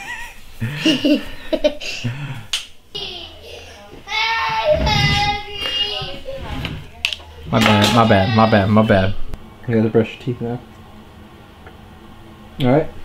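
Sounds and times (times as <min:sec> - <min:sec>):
people laughing: 0:00.0 - 0:02.4.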